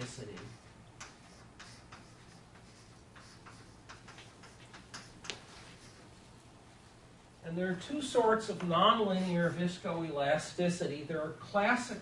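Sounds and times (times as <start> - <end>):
chalk tapping on blackboard: 0.0 - 6.0.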